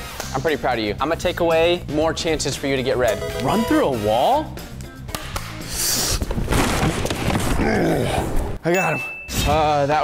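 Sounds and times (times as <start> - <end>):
background music: 0.0 - 6.9
drywall cracking and crashing: 6.4 - 7.6.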